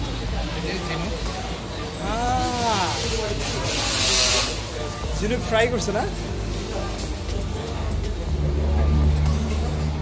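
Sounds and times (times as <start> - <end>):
background music: 0.0 - 10.0
motor vehicle rumble: 1.2 - 10.0.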